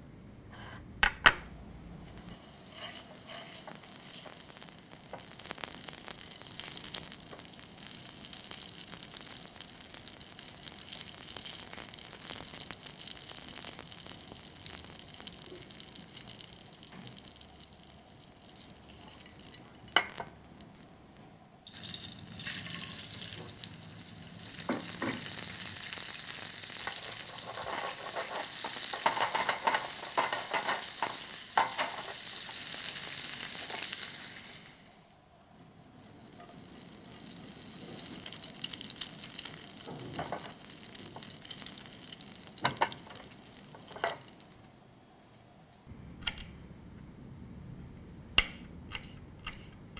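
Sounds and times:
shrimp crackling in frying fat: 2.0s - 34.9s, 36.0s - 44.8s
fat sizzling in a frying pan: 2.0s - 44.8s.

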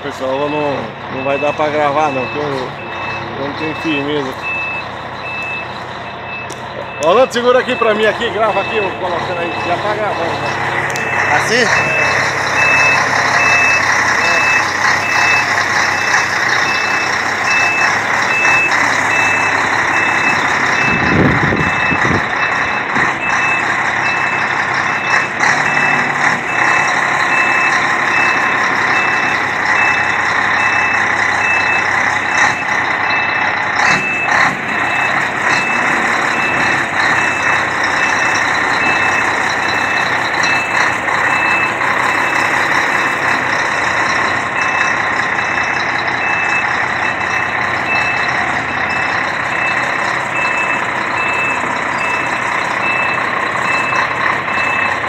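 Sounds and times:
diesel engine running: 0.0s - 55.0s
truck backup alarm beeping: 0.0s - 55.0s.

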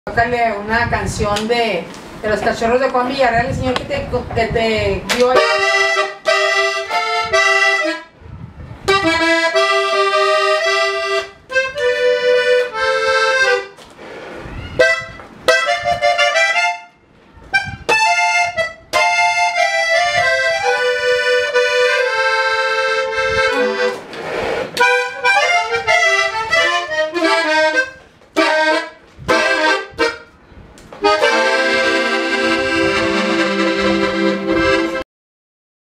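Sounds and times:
button accordion melody: 5.3s - 8.2s, 8.8s - 13.8s, 14.8s - 30.4s, 31.0s - 35.0s.

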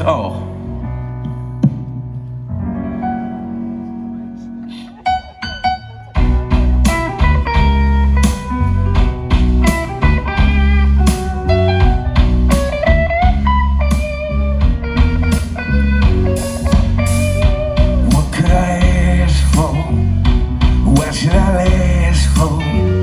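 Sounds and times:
live band guitar-led song: 0.0s - 23.0s.

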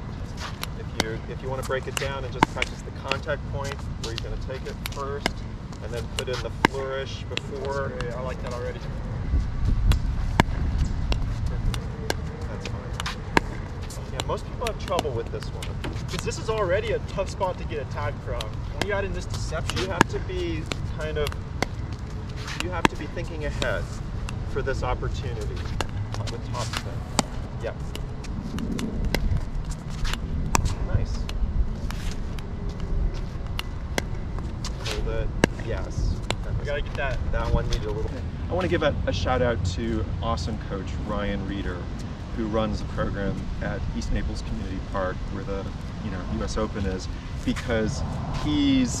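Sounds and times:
wind rumble on microphone: 0.0s - 49.0s
ball bouncing on hard court: 0.5s - 8.6s, 9.8s - 37.1s
pickleball hollow pops: 1.9s - 3.8s, 9.9s - 16.4s, 18.2s - 24.5s, 25.2s - 32.5s, 33.4s - 37.0s.

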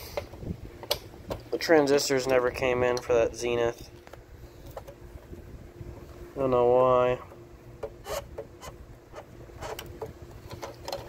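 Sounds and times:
fingers scraping and clicking radio knob: 8.0s - 11.0s.

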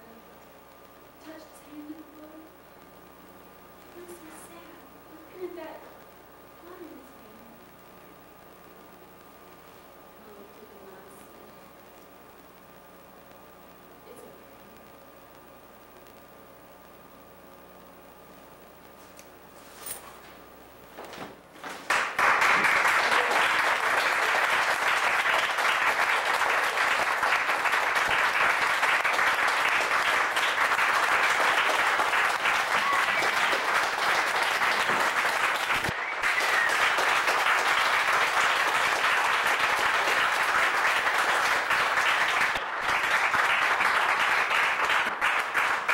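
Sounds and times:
audience clapping: 21.6s - 45.9s.

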